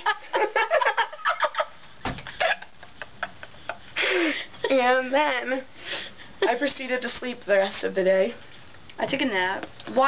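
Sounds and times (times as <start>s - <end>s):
young women laughing: 0.0s - 5.0s.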